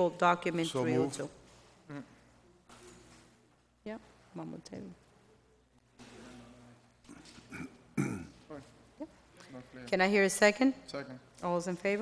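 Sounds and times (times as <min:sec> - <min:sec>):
faint murmured sounds: 0:00.0 - 0:12.0.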